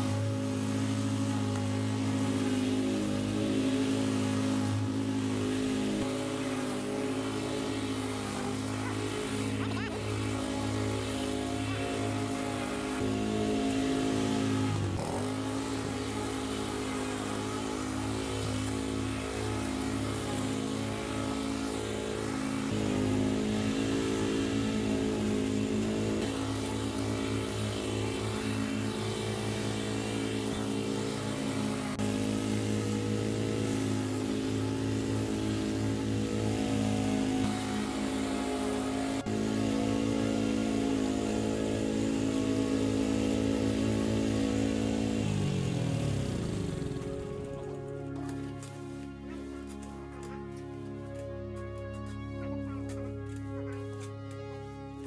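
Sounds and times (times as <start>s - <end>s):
lawn mower engine cutting grass: 0.0s - 55.0s.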